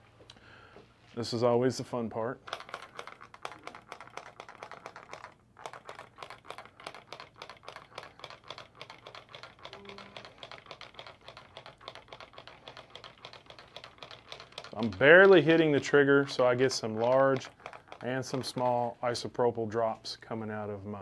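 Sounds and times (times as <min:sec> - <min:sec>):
spray bottle trigger clicks and spritzes: 0:02.4 - 0:18.8.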